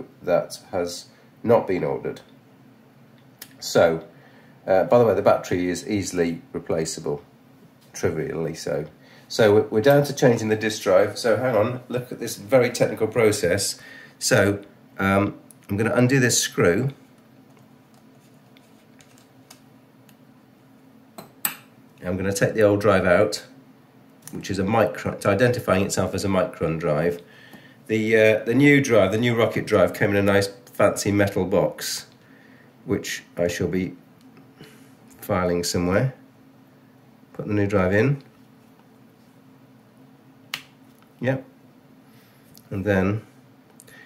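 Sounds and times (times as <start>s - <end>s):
faint background hum: 0.0s - 44.0s.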